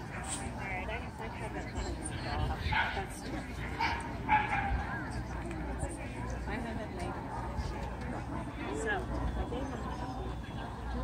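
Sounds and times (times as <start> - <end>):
crowd chatter: 0.0 - 11.0
dog barking: 3.8 - 4.8.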